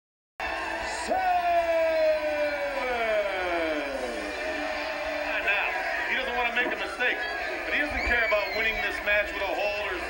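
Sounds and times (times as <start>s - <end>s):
man commentating: 0.8s - 10.0s.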